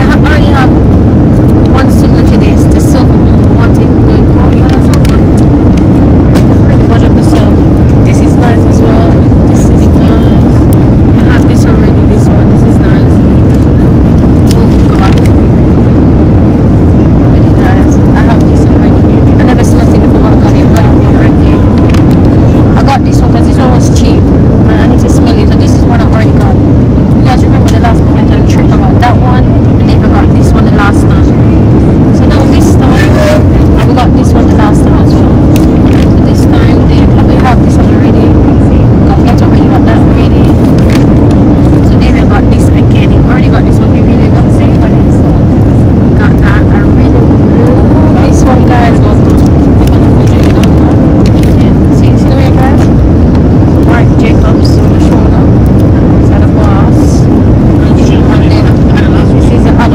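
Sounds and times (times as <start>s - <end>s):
airliner cabin engine rumble: 0.0s - 59.9s.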